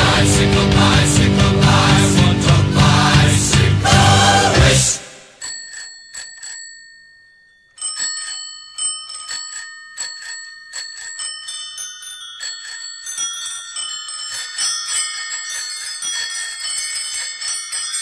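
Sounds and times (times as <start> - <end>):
bicycle bells ringing: 5.3 - 18.0.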